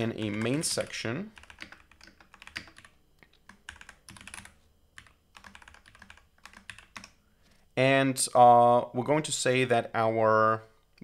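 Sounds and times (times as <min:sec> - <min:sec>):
typing on computer keyboard: 0:00.0 - 0:07.2.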